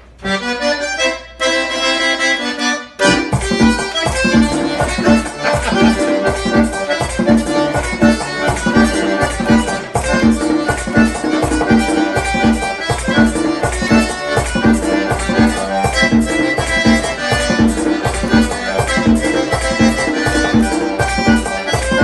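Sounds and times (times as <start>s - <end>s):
button accordion melody: 0.0s - 22.0s
percussion and bass beat: 3.0s - 22.0s.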